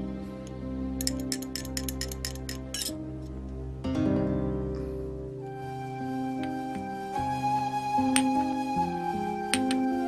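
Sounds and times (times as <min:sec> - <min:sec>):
soft background music: 0:00.0 - 0:10.0
teaspoon clinking against glass: 0:01.0 - 0:03.0.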